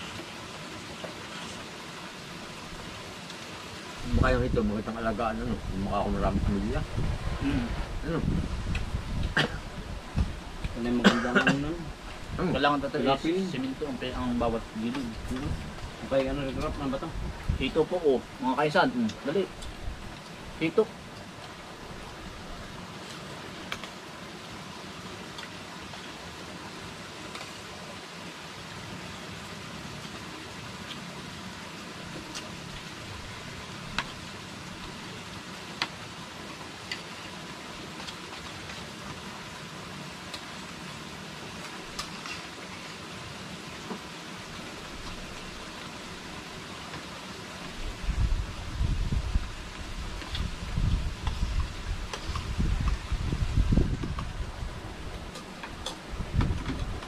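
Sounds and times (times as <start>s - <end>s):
steady background hiss: 0.0s - 57.0s
low rumbling bursts: 4.0s - 23.5s.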